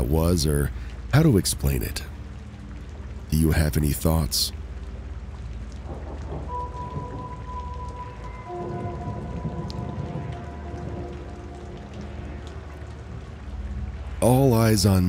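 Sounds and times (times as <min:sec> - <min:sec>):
dark ambient backing track: 0:00.0 - 0:15.0
rain-like rumble and hiss: 0:00.0 - 0:15.0.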